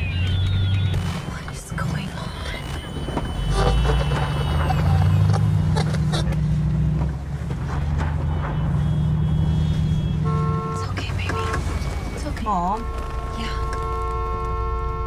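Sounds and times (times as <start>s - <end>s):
small clicks: 0.0s - 1.6s
car engine and road rumble: 0.0s - 15.0s
brief pitched tone: 2.4s - 5.8s.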